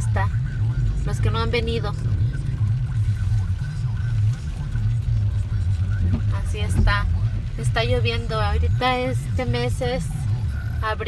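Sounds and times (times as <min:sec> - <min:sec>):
car engine idling inside cabin: 0:00.0 - 0:11.0.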